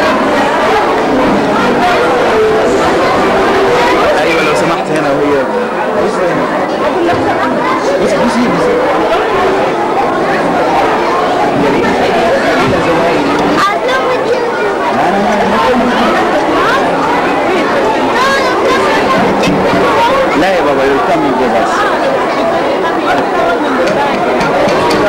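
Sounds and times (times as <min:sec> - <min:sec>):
young children chattering: 0:00.0 - 0:25.0.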